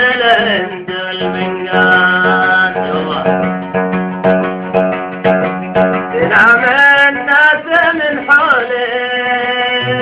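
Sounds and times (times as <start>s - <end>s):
person singing: 0.0s - 3.8s, 6.1s - 10.0s
accompaniment holding long notes: 0.0s - 10.0s
oud: 0.0s - 10.0s.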